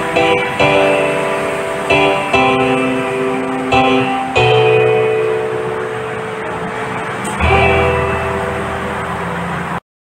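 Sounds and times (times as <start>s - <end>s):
instrumental held chord: 0.0s - 9.8s.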